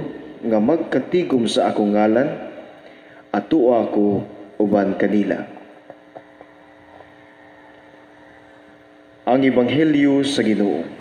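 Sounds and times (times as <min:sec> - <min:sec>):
faint electrical hum: 0:00.0 - 0:11.0.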